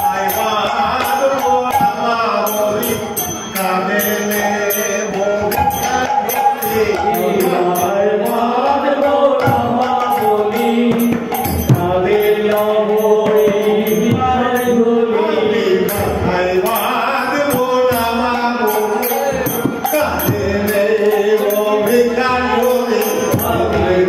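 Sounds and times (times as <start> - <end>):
hand cymbals striking: 0.0 - 24.0
men singing devotional melody: 0.0 - 24.0.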